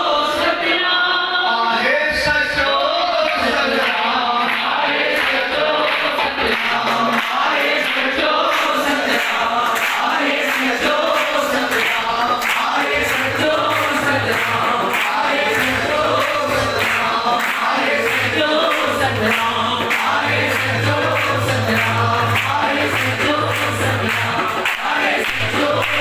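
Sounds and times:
congregation singing a chant: 0.0 - 26.0
man's voice leading singing: 0.0 - 26.0
low rhythmic beat: 8.3 - 26.0.

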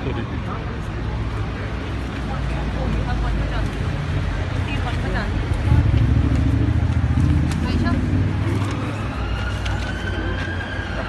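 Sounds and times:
crowd chatter: 0.0 - 11.0
vehicle engine rumble: 0.0 - 11.0
emergency vehicle siren: 7.1 - 11.0.

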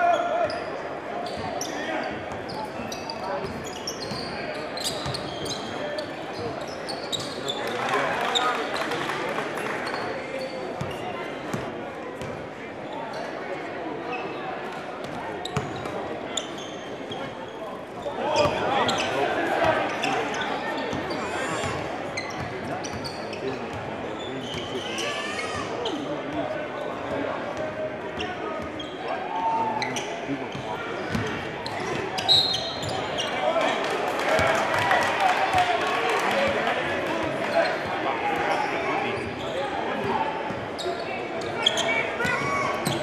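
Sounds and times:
murmur of crowd chatter: 0.0 - 43.0.

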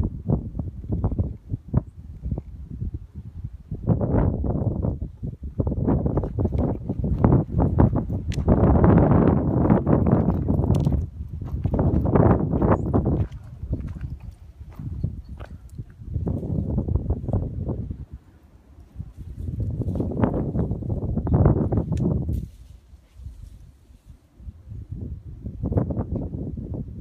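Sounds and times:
footsteps: 6.2 - 16.5
dry twigs crackling and snapping: 10.2 - 11.1.

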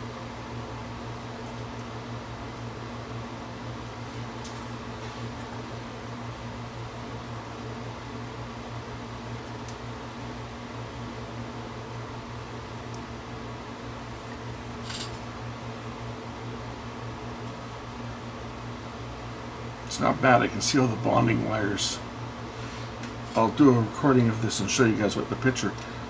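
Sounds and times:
fan hum: 0.0 - 26.0.

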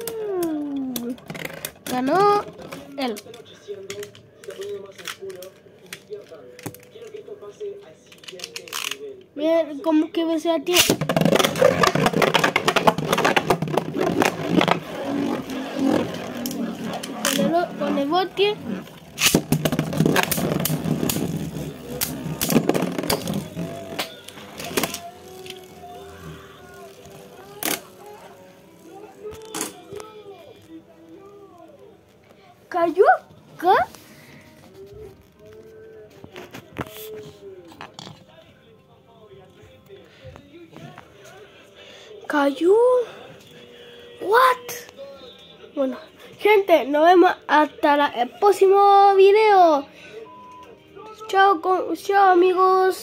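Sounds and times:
spinning top rattling on plastic: 10.7 - 30.0
faint voices: 11.1 - 51.4.

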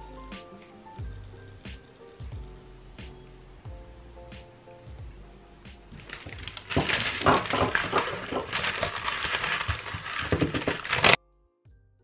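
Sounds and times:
paper crinkling: 5.9 - 11.2.

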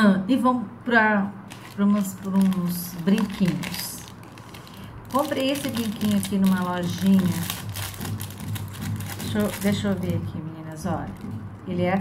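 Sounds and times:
plastic bag crinkling: 1.4 - 10.3.

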